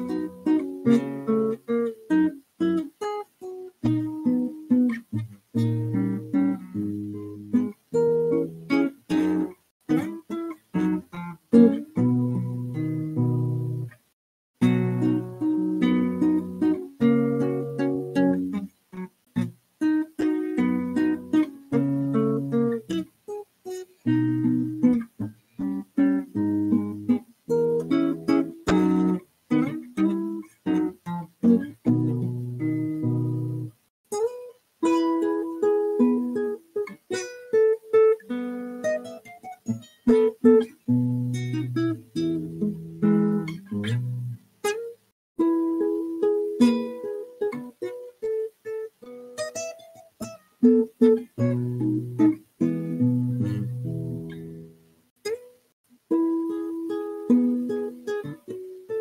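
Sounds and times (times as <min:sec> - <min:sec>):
fingerpicked classical guitar: 0:00.0 - 0:59.0.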